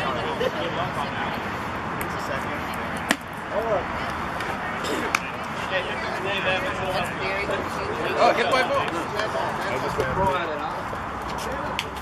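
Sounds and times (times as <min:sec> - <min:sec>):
spectator chatter: 0:00.0 - 0:12.0.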